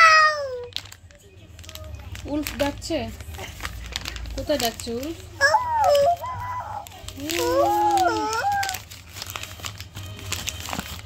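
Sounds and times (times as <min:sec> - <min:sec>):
baby vocalizing: 0:05.4 - 0:08.7.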